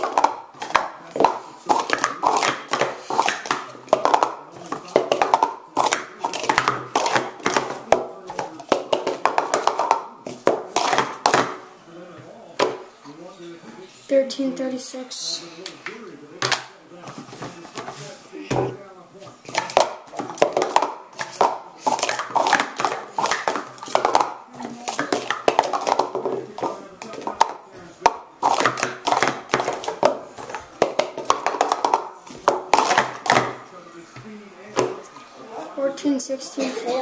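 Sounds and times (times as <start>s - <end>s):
plastic cups clattering: 0.0s - 11.6s, 12.6s - 12.9s, 15.8s - 33.7s, 34.8s - 35.3s.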